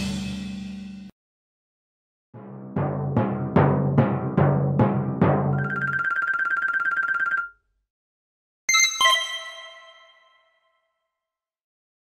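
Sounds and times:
warbling boing jingle: 5.6 - 7.5.

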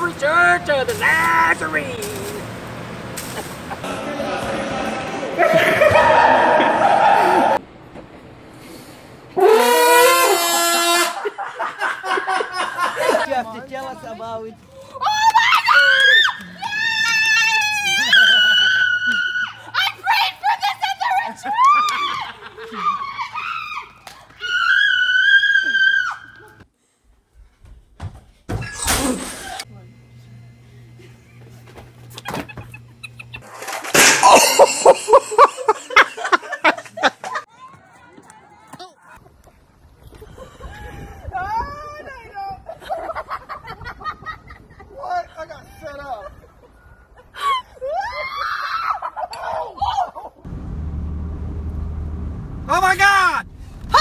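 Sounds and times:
excited voices shouting and laughing: 3.7 - 7.6, 14.7 - 26.6, 40.2 - 50.5
loud rising scream: 3.8 - 7.6
loud crash: 33.7 - 34.9
road noise inside moving car: 50.5 - 54.0.

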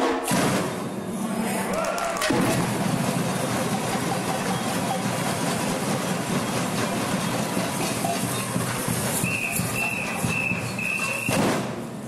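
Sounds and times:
drum roll: 1.7 - 12.0.

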